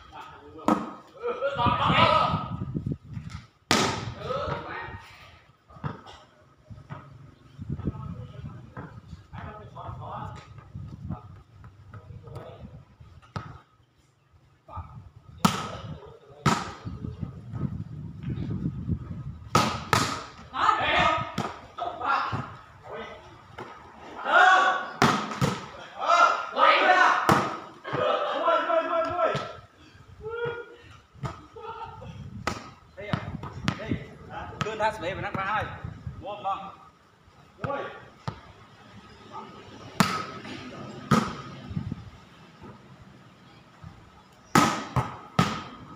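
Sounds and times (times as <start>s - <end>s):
players shouting: 20.5s - 23.2s, 24.0s - 30.8s.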